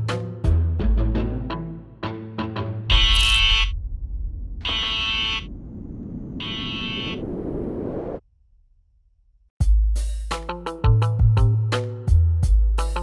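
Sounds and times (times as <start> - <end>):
electronic buzzer: 2.9 - 3.7, 4.6 - 5.5, 6.4 - 7.2.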